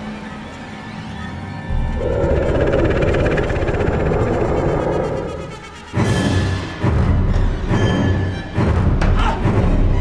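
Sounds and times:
grinding horror rumble: 0:01.7 - 0:06.1.

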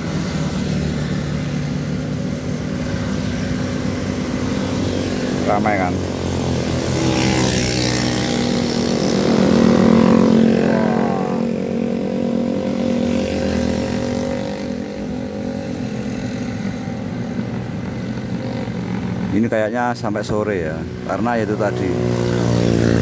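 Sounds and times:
motorcycles riding past: 0:00.0 - 0:23.0.

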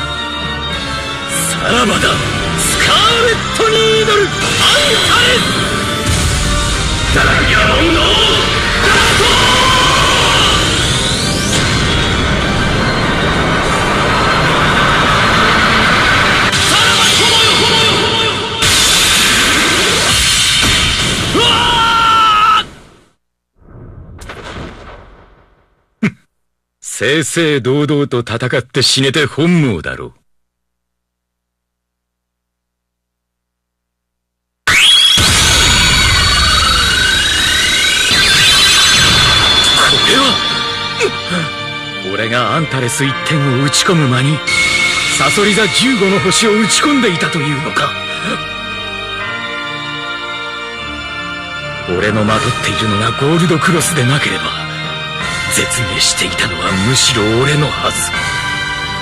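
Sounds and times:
loud game soundtrack music: 0:00.0 - 0:21.8, 0:34.7 - 0:59.0
shouted attack cry: 0:21.3 - 0:22.7
high ringing electronic tones: 0:35.1 - 0:41.0.

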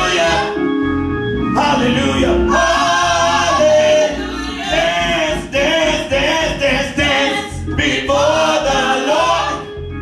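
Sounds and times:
group singing gospel song: 0:00.0 - 0:00.7, 0:01.6 - 0:09.9
instrumental accompaniment: 0:00.0 - 0:10.0.

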